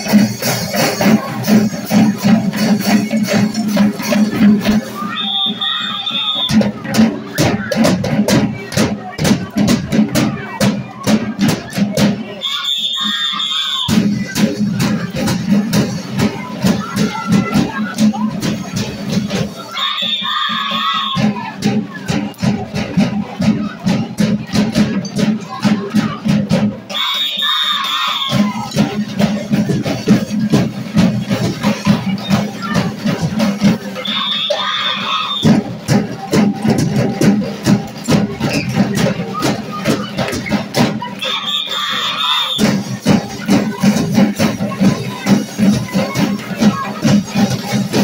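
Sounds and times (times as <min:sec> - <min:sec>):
marching drums: 0:00.0 - 0:48.0.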